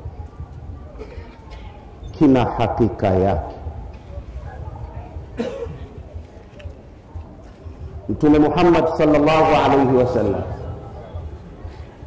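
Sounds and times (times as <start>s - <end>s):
man coughing: 5.4s - 5.9s.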